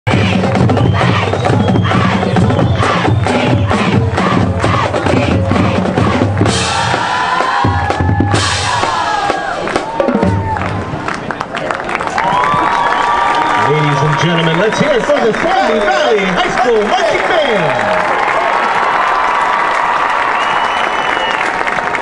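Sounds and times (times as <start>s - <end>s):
drumline beat: 0.1s - 11.1s
marching band playing: 0.1s - 11.4s.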